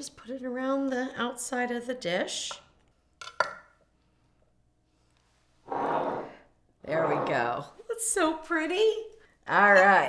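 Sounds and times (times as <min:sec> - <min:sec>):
ceramic bowl scraping on stone: 0:05.7 - 0:07.5.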